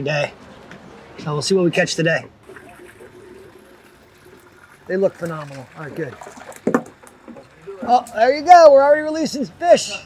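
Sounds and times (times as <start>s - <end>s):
faint steady hum: 0.0s - 10.0s
water trickling and lapping: 2.4s - 8.6s.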